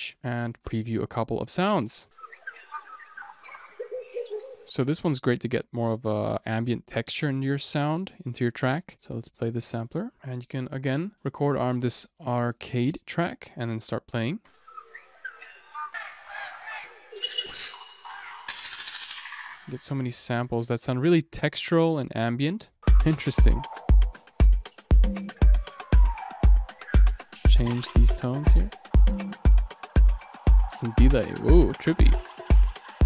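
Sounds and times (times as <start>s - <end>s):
bird-like chirps: 2.1s - 4.7s, 14.6s - 16.4s, 17.1s - 19.7s, 23.6s - 27.9s.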